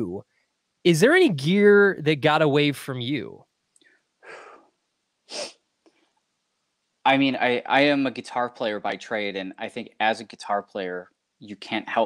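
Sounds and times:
man breathing: 0:04.2 - 0:04.7.

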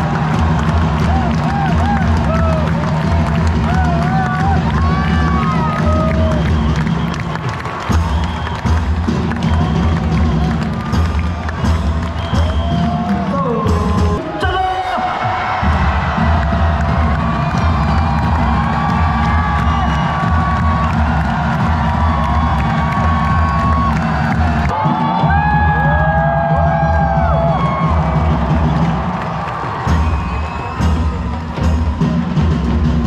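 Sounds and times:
stadium crowd cheering: 0:00.0 - 0:33.0.

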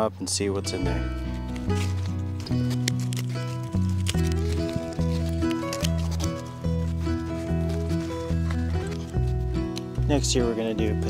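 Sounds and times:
rhythmic bass line music: 0:00.6 - 0:11.0.

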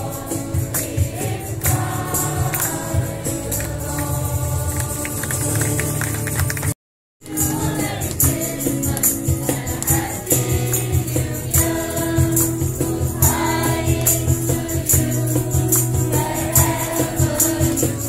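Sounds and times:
carollers singing in unison: 0:00.0 - 0:06.4, 0:07.2 - 0:18.0
jingling percussion beat: 0:00.0 - 0:06.6, 0:07.2 - 0:18.0.

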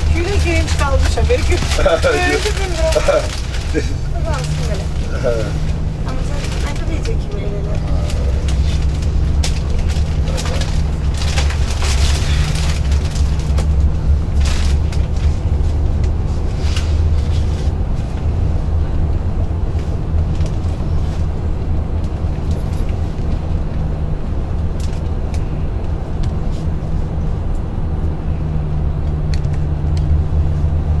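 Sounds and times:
low vehicle rumble: 0:00.0 - 0:31.0.

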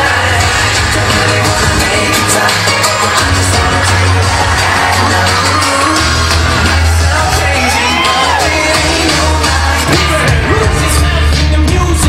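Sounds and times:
pop song over pa system: 0:00.0 - 0:12.0
audience cheering and whooping: 0:01.6 - 0:10.0.

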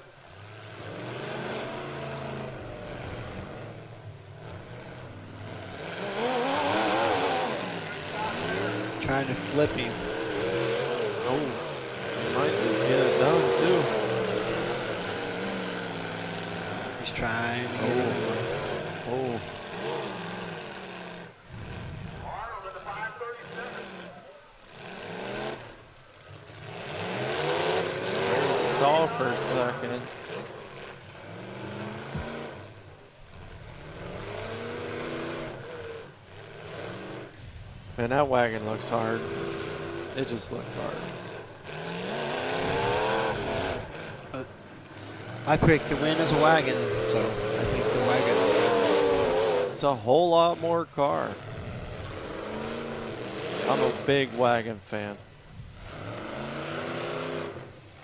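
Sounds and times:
car engines revving: 0:00.0 - 0:58.0.

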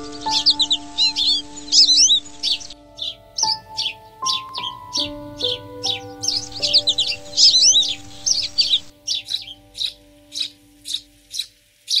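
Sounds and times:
soft sustained music notes: 0:00.0 - 0:12.0
sparrows chirping: 0:00.0 - 0:12.0.

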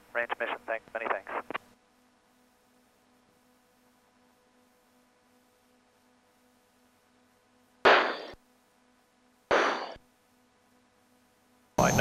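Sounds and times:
faint electrical hum: 0:00.0 - 0:12.0
radio static bursts: 0:00.2 - 0:01.6.

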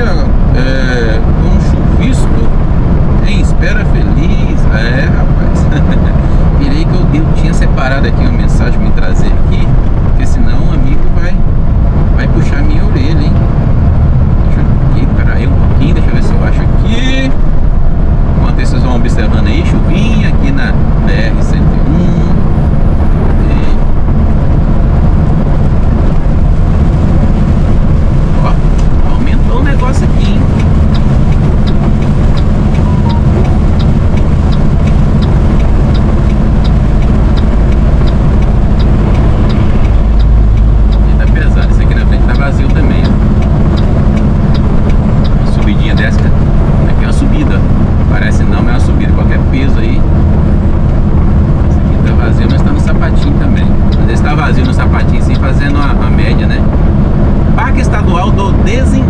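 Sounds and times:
truck diesel engine droning: 0:00.0 - 0:59.0
tyre and road noise: 0:00.0 - 0:59.0.

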